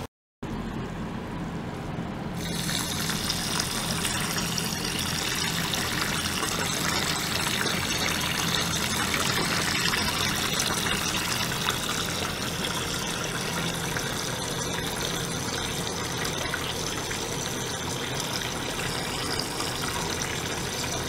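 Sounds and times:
pump low hum: 0.5 - 21.0
water churning and bubbling: 2.4 - 21.0.

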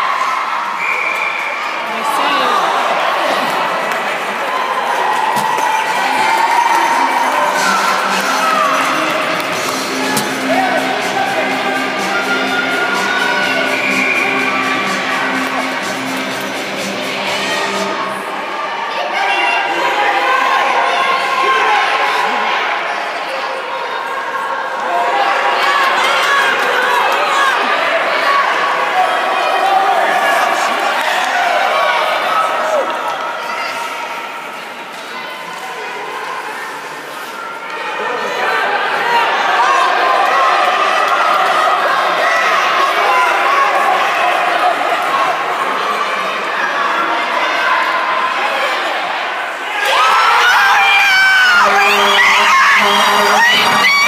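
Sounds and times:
spectators calling out and chattering: 0.0 - 54.0.

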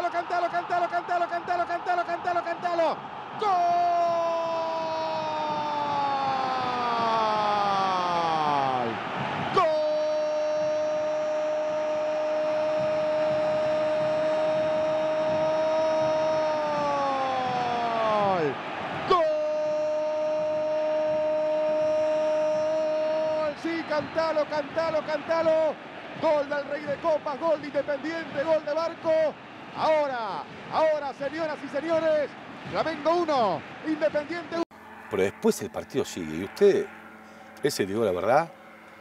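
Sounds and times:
man shouting goal call: 0.0 - 25.7.

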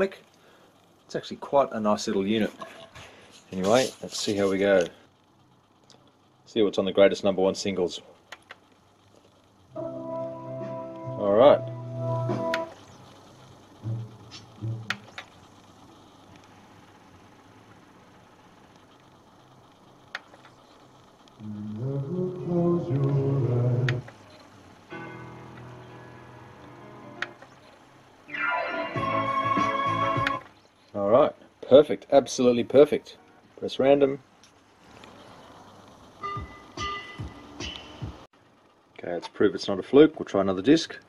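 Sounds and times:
sharp clicks: 8.3 - 8.8, 14.3 - 15.5.

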